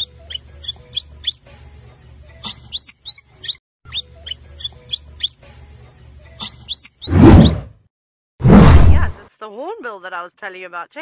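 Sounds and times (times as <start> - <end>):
birds chirping: 0.0 - 1.4, 2.4 - 5.4, 6.4 - 7.6.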